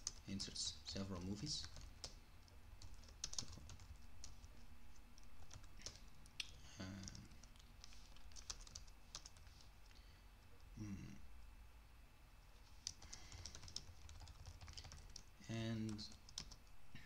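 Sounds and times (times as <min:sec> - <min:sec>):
keystrokes on computer keyboard: 0:01.1 - 0:04.5, 0:05.2 - 0:09.6, 0:12.8 - 0:16.7.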